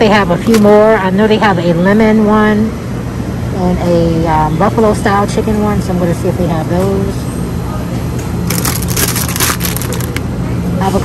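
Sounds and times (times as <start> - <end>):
plastic bag crinkling: 8.5 - 10.2.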